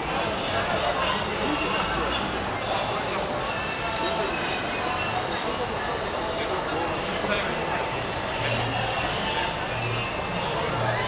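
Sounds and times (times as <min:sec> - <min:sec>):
indistinct voices: 0:00.0 - 0:11.0
street noise: 0:00.0 - 0:11.0.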